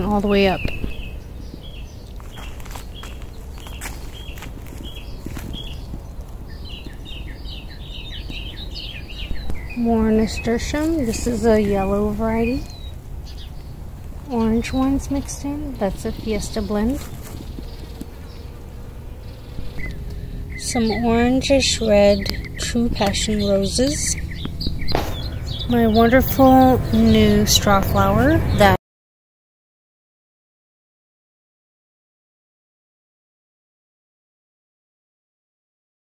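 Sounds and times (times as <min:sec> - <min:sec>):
low rumble: 0:00.0 - 0:28.8
songbirds chirping: 0:00.0 - 0:28.8
bee buzzing: 0:01.0 - 0:28.8.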